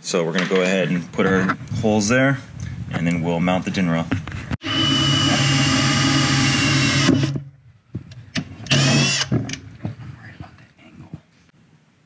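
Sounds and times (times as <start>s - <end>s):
cordless drill drilling into steel: 4.6s - 7.4s, 8.7s - 9.3s.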